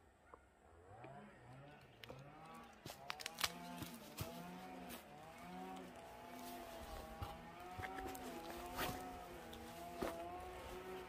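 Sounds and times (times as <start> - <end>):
footsteps crunching on stony path: 2.1 - 11.0.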